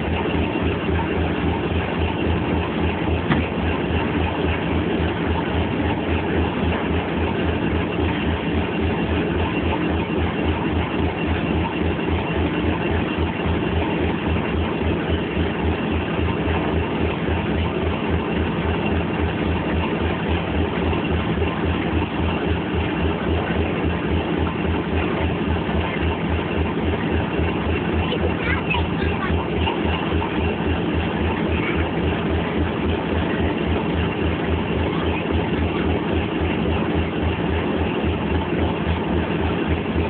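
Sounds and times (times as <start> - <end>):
diesel locomotives idling: 0.0 - 40.0.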